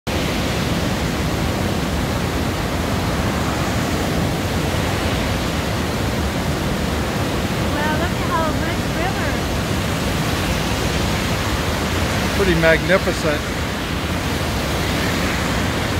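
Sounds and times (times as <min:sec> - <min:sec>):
river rushing over rocks: 0:00.1 - 0:15.9.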